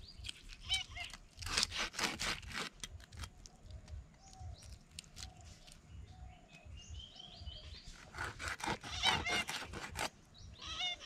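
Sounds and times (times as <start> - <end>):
birds chirping: 0.0 - 1.3, 3.3 - 11.0.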